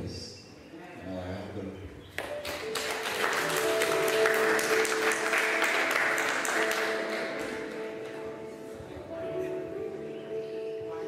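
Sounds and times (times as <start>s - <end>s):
congregation applauding: 2.2s - 8.4s
soft held instrumental chords: 2.2s - 11.0s.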